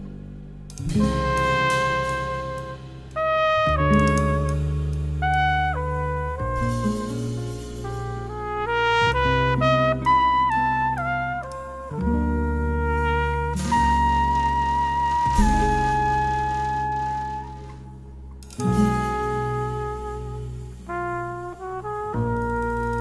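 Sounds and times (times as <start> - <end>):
low held bass notes: 0.0 - 23.0
trumpet melody: 0.8 - 23.0.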